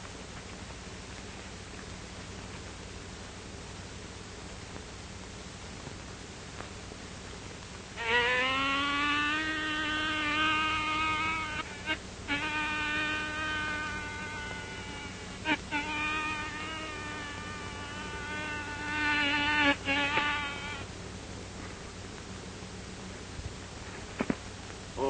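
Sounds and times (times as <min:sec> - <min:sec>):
man imitating buzzing bee: 0:08.0 - 0:20.9.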